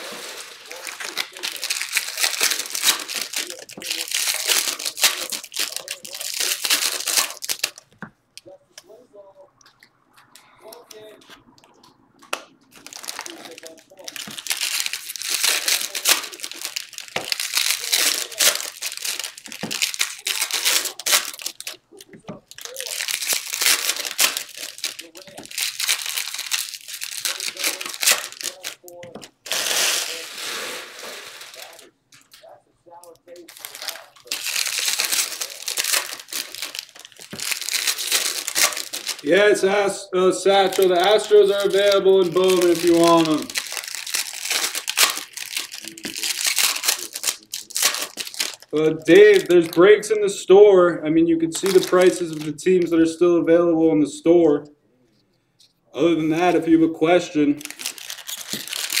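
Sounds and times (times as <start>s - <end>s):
foil wrappers crinkling and tearing: 0.0s - 8.0s, 12.7s - 32.5s, 33.1s - 50.6s, 51.4s - 53.3s, 56.0s - 59.0s.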